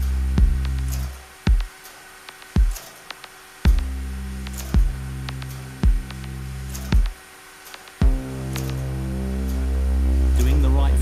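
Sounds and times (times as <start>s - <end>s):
low synthesizer drone: 0.0s - 1.7s, 3.6s - 7.2s, 8.0s - 11.0s
person speaking: 10.3s - 11.0s.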